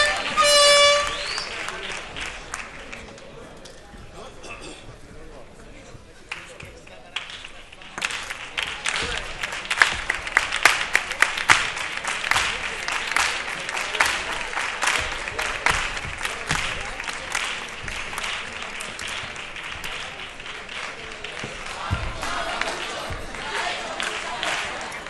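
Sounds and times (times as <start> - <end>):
audience applauding: 0.0 - 3.4, 6.3 - 25.0.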